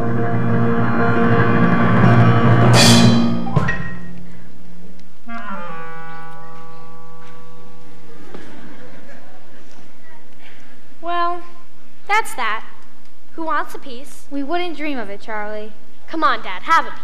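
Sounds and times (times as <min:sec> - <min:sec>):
orchestra held chord: 0:00.0 - 0:03.8
cymbal swell: 0:00.0 - 0:04.2
timpani roll: 0:00.0 - 0:04.2.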